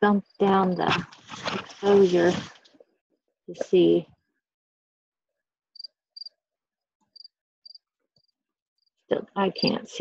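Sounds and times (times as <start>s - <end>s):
cricket chirping: 5.8s - 6.3s.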